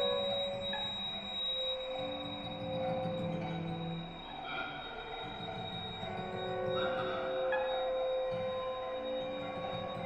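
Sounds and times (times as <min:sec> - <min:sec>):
quiet chamber music: 0:00.0 - 0:10.0.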